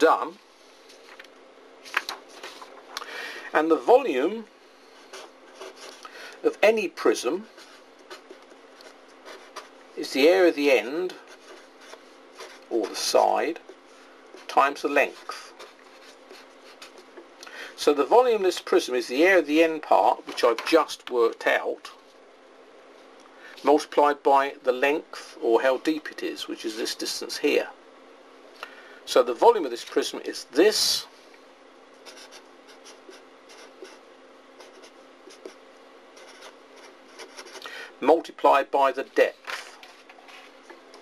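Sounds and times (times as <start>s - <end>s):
marker pen scratching on paper: 5.0s - 6.0s, 7.5s - 9.8s, 11.1s - 13.7s, 14.3s - 17.1s, 32.0s - 34.0s, 34.6s - 35.6s, 36.2s - 37.7s.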